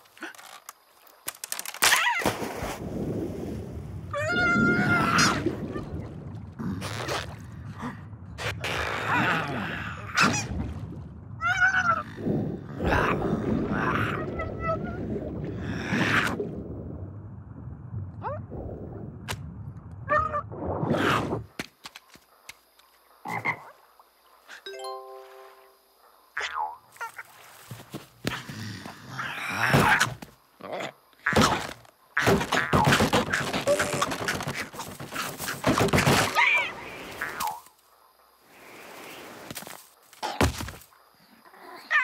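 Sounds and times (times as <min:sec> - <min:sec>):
frog croaking: 0:23.2 - 0:24.1, 0:26.2 - 0:27.3.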